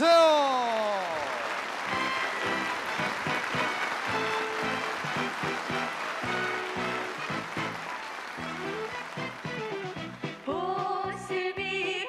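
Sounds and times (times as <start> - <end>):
crowd noise: 0.0 - 10.9
live band playing pop music: 8.4 - 12.0.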